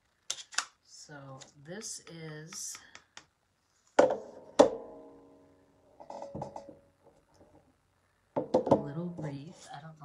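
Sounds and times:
hard object knocking on table: 0:04.0 - 0:04.8, 0:06.1 - 0:06.8, 0:08.4 - 0:08.9.

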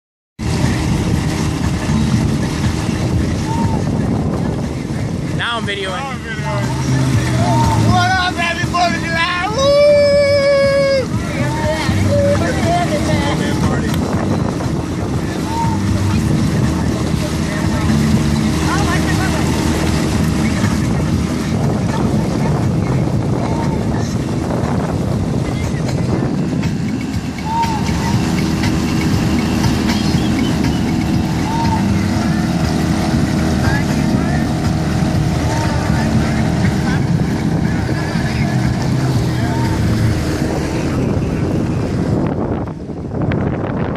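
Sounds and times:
motorboat engines droning: 0:00.4 - 0:43.9
water rushing: 0:00.4 - 0:43.9
wind: 0:00.4 - 0:43.9.

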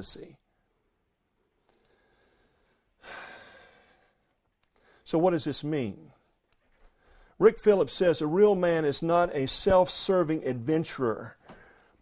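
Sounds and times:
man breathing into microphone: 0:11.4 - 0:12.0.

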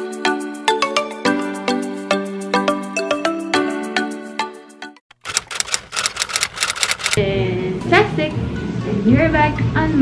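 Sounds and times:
typewriter key clacks: 0:05.2 - 0:07.2.

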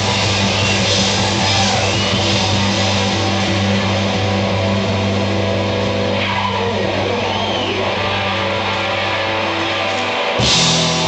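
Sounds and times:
blues-rock band distorted chord: 0:00.0 - 0:11.0
electric guitar pitch bends: 0:00.0 - 0:11.0.

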